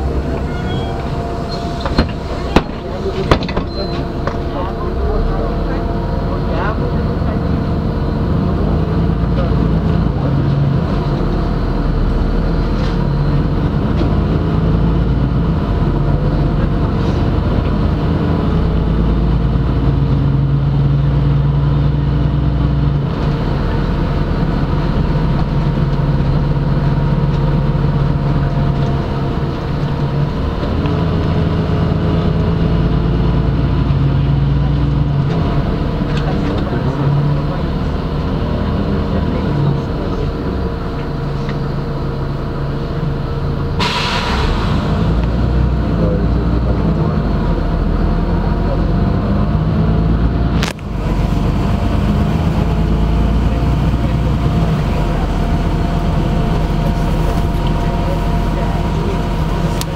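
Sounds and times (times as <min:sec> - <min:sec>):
bus diesel engine running: 0:00.0 - 0:59.9
road and tyre noise: 0:00.0 - 0:59.9.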